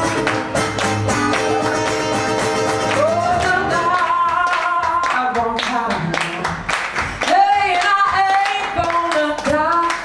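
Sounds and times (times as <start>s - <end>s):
people clapping in time: 0.0s - 10.0s
person singing: 1.4s - 6.5s.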